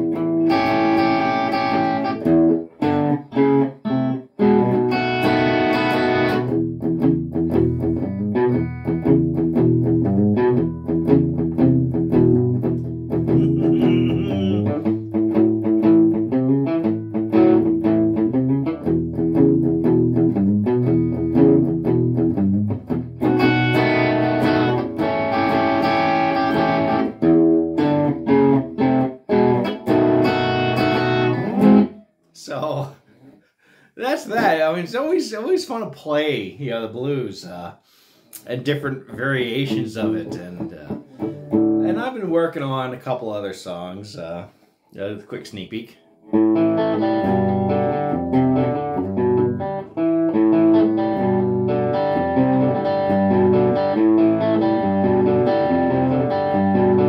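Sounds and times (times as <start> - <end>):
electric guitar blues shuffle riff: 0.0 - 32.0, 38.4 - 42.8, 46.3 - 57.0
strummed guitar chords: 0.0 - 32.0, 39.1 - 42.8, 46.3 - 57.0.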